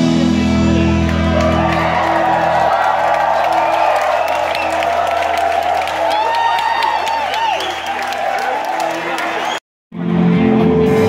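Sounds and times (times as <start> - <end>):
live rock band playing: 0.0 - 2.0, 10.0 - 11.0
crowd cheering and clapping: 0.7 - 9.6.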